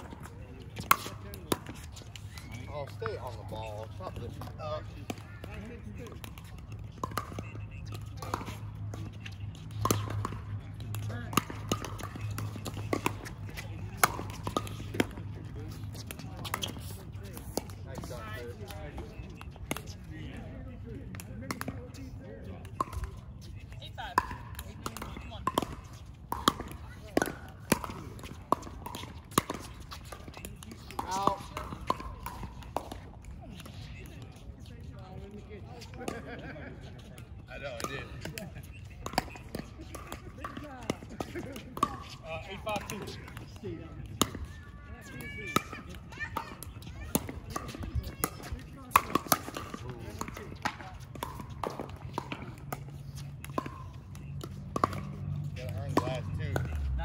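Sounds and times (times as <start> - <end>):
voices talking: 0.0 - 57.0
paddles hitting plastic ball: 0.2 - 20.0, 21.1 - 21.8, 24.2 - 34.9, 37.4 - 57.0.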